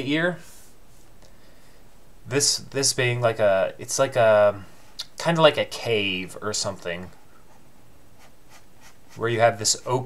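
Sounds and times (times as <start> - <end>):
stylus scratching on tablet: 7.3 - 9.4.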